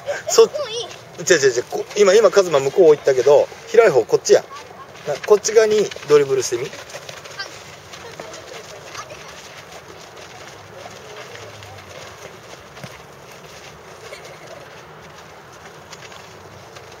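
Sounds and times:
feet on a dirt pitch: 0.0 - 17.0
soccer balls being kicked: 3.8 - 17.0
distant children's voices: 4.3 - 5.9, 7.2 - 12.9.

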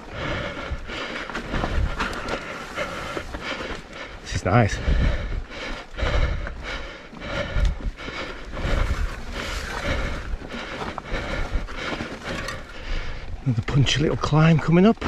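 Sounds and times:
low rumbles: 0.0 - 14.2
bike rattling: 0.0 - 15.0.

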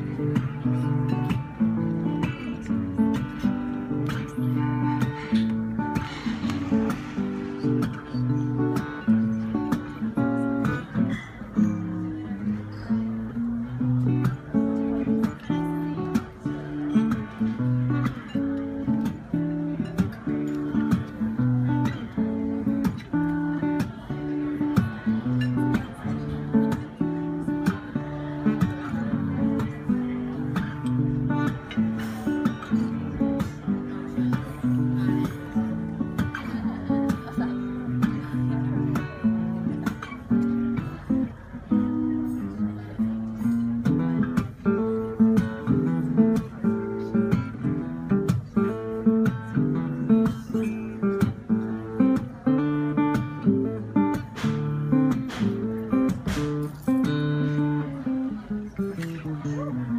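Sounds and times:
acoustic guitar slap-style playing: 0.0 - 59.9.

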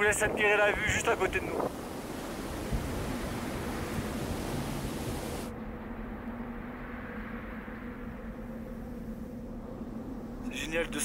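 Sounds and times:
wind rushing hiss: 0.0 - 10.8.

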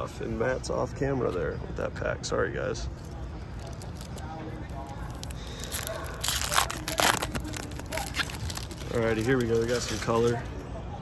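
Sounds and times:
card pack wrapper tearing and crinkling: 3.0 - 10.2
cards being handled: 3.0 - 10.4.

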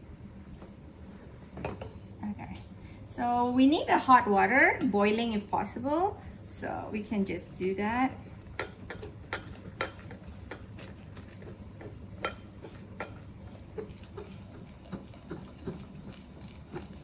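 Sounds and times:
faint steady hum: 0.0 - 17.0
utensils tapping mixing bowl: 8.1 - 17.0.

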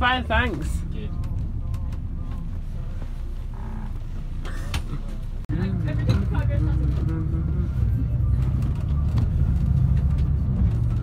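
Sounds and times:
bus engine and road noise: 0.0 - 11.0.

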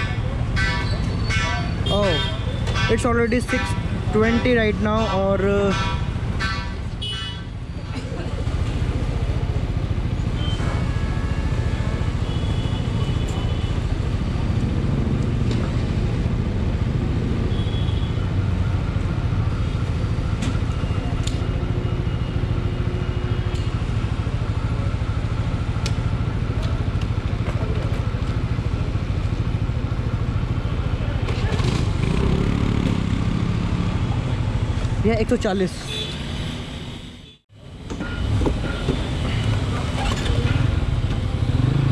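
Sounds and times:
motorcycle engines idling: 0.0 - 10.4, 18.2 - 35.0.

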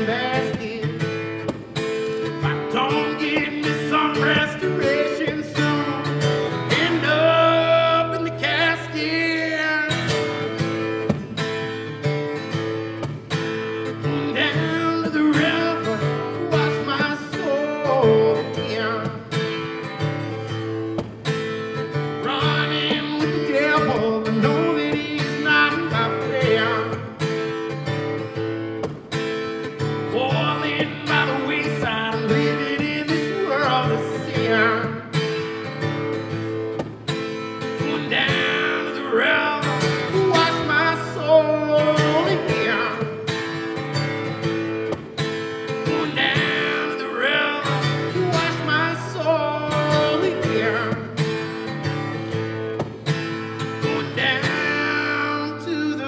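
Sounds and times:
man singing: 0.0 - 11.1, 13.8 - 20.0, 21.8 - 27.8, 29.8 - 35.8, 37.6 - 44.5, 45.5 - 52.3, 53.4 - 56.0
acoustic guitar strumming: 0.0 - 56.0.

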